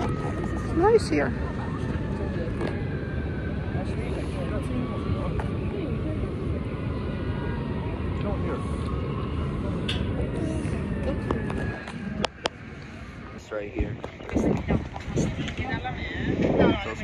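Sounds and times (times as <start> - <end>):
people chattering: 0.0 - 17.0
wind on microphone: 9.5 - 17.0.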